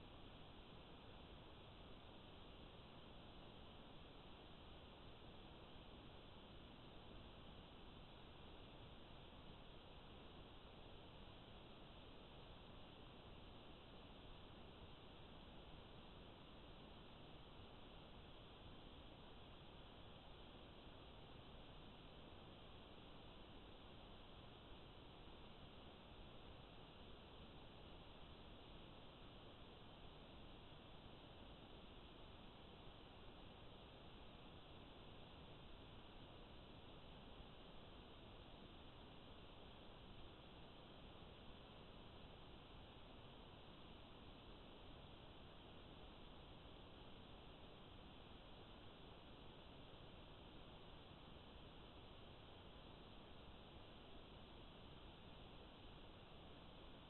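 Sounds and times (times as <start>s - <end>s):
faint steady hiss: 0.0s - 57.0s.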